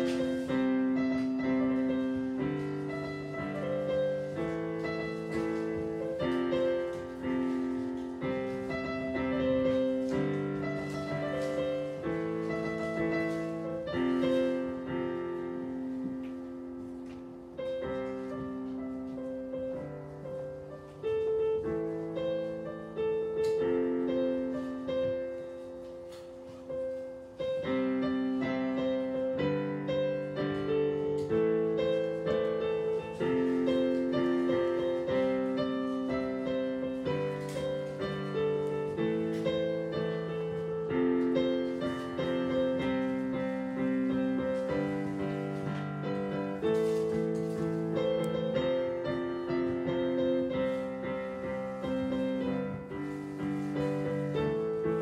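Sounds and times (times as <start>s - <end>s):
digital piano playing chords: 0.0s - 55.0s.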